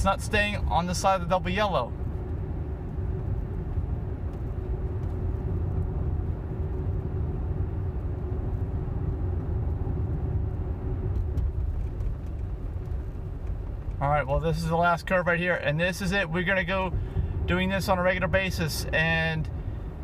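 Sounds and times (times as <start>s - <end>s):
tyre and road noise rumble: 0.0s - 20.0s.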